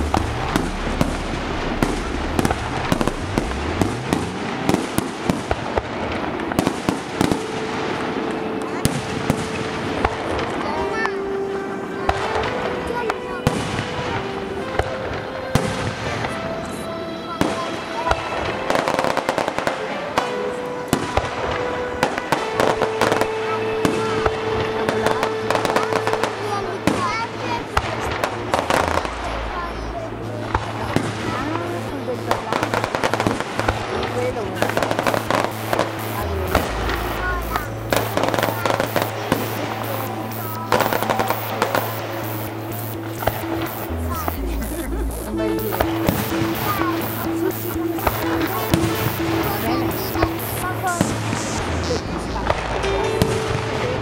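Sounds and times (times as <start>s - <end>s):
music with held notes and bass: 0.0s - 4.9s, 28.2s - 54.0s
crackling sparks: 0.0s - 11.0s, 17.4s - 54.0s.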